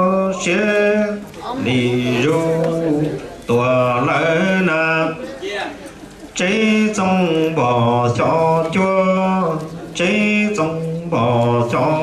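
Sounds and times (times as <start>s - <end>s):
man chanting unaccompanied: 0.0s - 5.2s, 6.4s - 12.0s.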